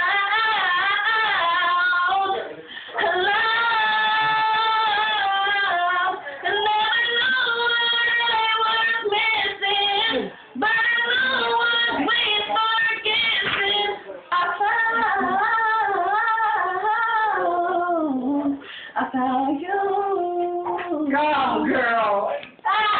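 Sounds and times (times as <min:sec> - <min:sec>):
young woman singing with vibrato: 0:00.0 - 0:22.9.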